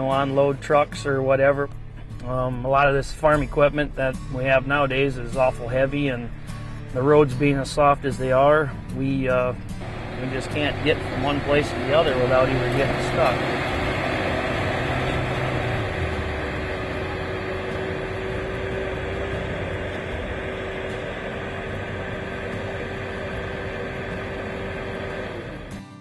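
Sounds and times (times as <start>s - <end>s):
pickup truck driving by: 0.0s - 26.0s.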